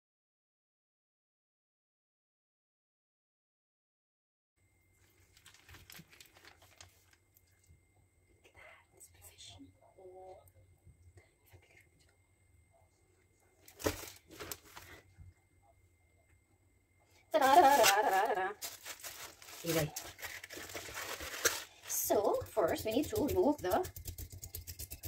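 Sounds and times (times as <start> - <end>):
faint rustling and handling: 4.9 - 7.8, 13.2 - 15.2, 17.3 - 23.3.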